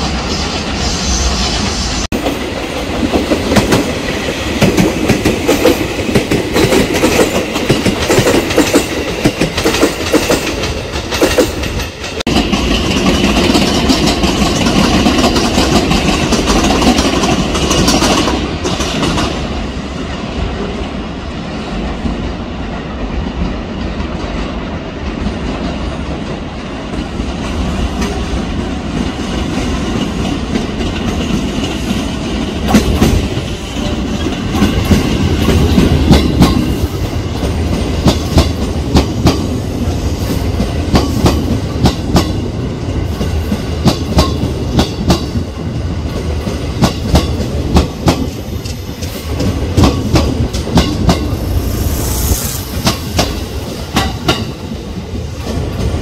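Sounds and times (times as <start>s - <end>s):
train rolling with low rumble: 0.0s - 56.0s
train wheels clacking over rail joints: 2.1s - 19.5s, 29.0s - 39.5s, 43.2s - 45.5s, 46.1s - 51.4s.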